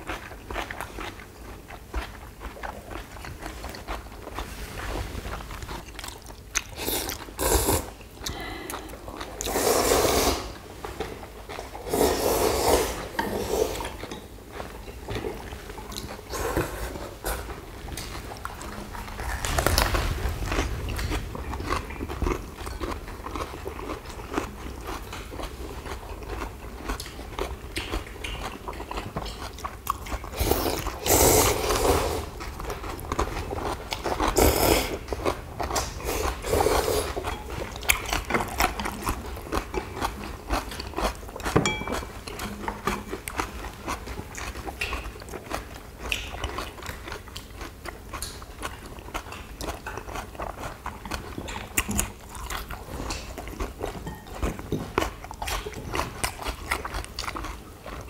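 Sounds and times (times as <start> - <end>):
chewing and mouth sounds: 0.0 - 58.0
slurping noodles: 3.5 - 8.0, 9.4 - 10.6, 11.6 - 14.0, 30.2 - 39.4.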